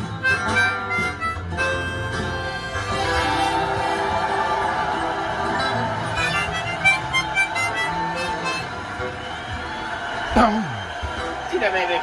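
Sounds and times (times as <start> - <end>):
harmonica playing: 0.0 - 10.0.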